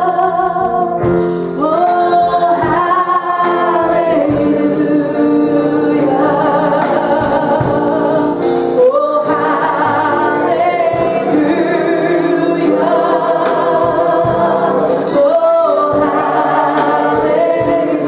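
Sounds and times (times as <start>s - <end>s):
gospel singing with accompaniment: 0.0s - 18.0s.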